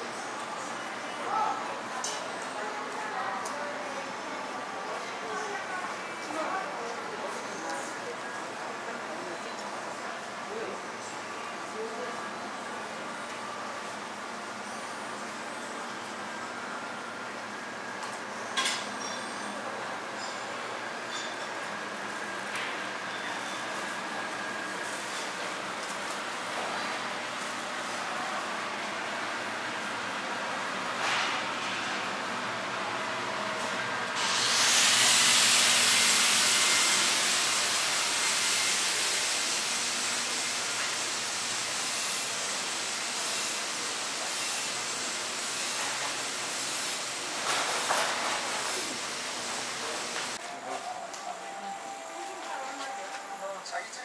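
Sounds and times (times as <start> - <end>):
busy market background noise: 0.0 - 54.0
loud steady hiss: 34.1 - 50.4.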